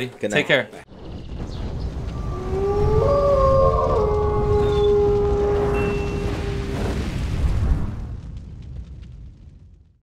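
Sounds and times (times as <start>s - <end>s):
low rumble: 0.9s - 10.0s
wolf howling: 2.1s - 7.0s.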